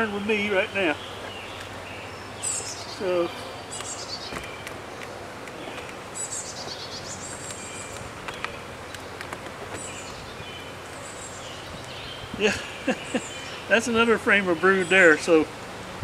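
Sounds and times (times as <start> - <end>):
honeybees humming: 0.0 - 16.0
songbirds singing: 0.0 - 16.0
wooden hive frames clicking: 7.3 - 10.0.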